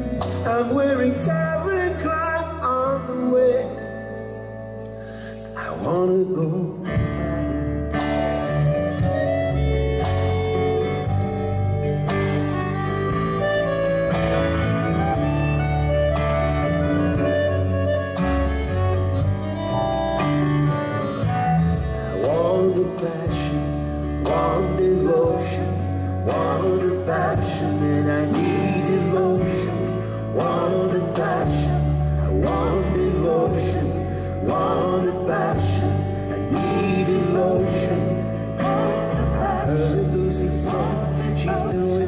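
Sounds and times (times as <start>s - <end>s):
deep bass line: 0.0s - 42.0s
live band playing: 0.0s - 42.0s
accordion: 7.5s - 42.0s
person singing: 21.2s - 42.0s.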